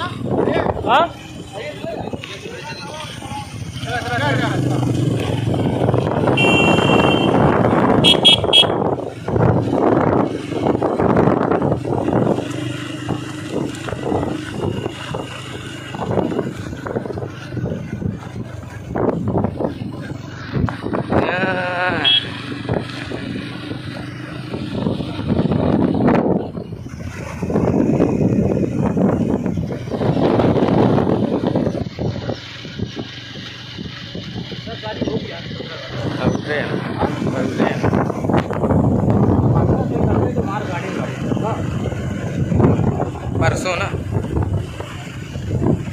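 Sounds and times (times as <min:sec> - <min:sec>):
motorcycle engines running: 0:00.0 - 0:45.9
wind buffeting microphone: 0:00.0 - 0:45.9
horn honking: 0:06.3 - 0:09.0, 0:21.9 - 0:22.4.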